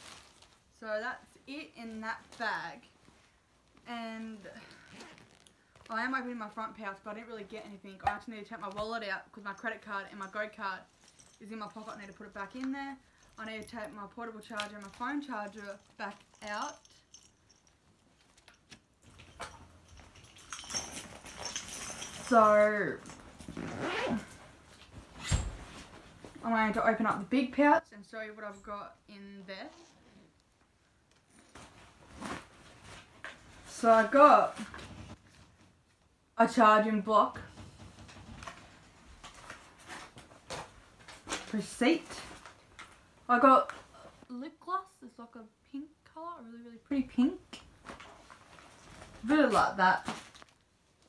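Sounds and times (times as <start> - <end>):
fabric bag rustling: 0.0 - 0.7, 2.1 - 5.9, 10.3 - 26.4
small clicks and clinks: 10.0 - 23.6.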